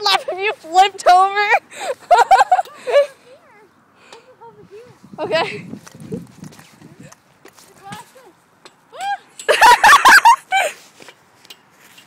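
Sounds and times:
girl giggling: 0:01.8 - 0:03.5.

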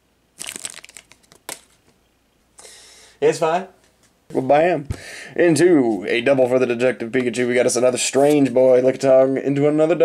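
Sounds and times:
foil wrapper crinkling: 0:00.4 - 0:01.9.

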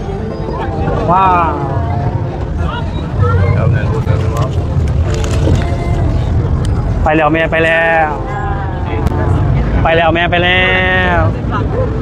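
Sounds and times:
boat engine rumble: 0:00.0 - 0:12.0
faint passenger chatter: 0:00.0 - 0:12.0.

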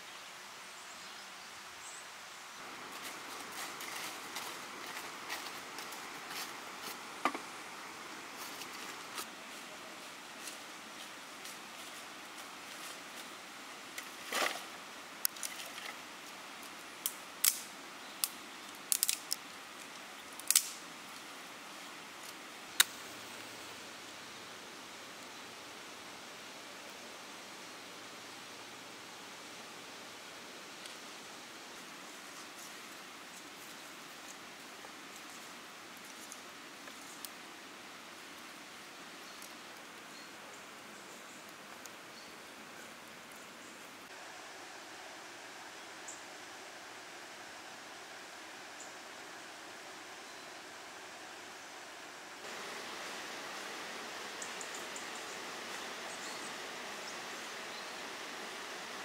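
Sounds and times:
faint steady hiss of open air: 0:00.0 - 0:59.0
dry twigs snapping: 0:17.0 - 0:20.8.

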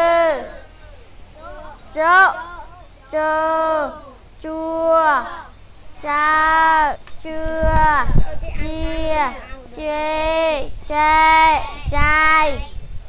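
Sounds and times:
children chanting syllables: 0:00.0 - 0:13.0.

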